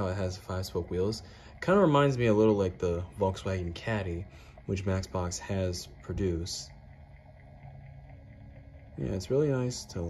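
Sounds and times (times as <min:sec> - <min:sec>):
electric turntable motor hum: 0:00.0 - 0:10.0.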